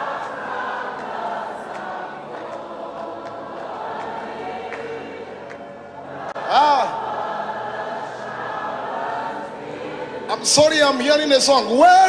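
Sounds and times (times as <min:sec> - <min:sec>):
choir and congregation singing: 0:00.0 - 0:12.0
man's loud voice: 0:10.3 - 0:12.0.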